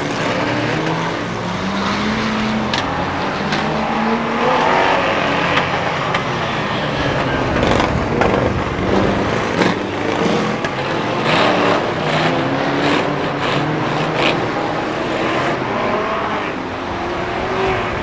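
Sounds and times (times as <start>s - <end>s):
race car engines revving past: 0.0s - 18.0s.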